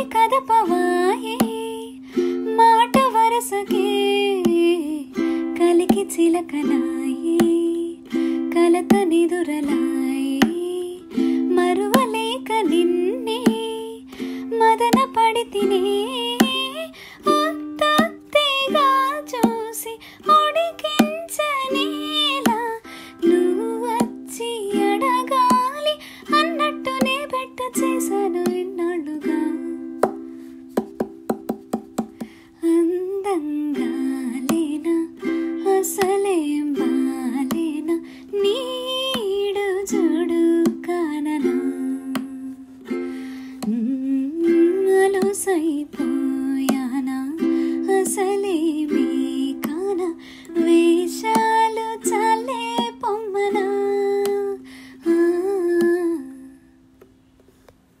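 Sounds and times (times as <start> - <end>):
woman singing: 0.0 - 30.3, 32.6 - 56.7
ukulele strum and plucked notes: 0.0 - 57.2.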